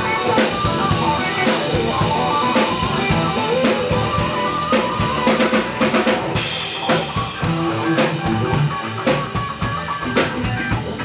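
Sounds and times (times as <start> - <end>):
bass guitar: 0.0 - 11.0
distorted electric guitars: 0.0 - 11.0
drum kit hits: 0.0 - 11.0.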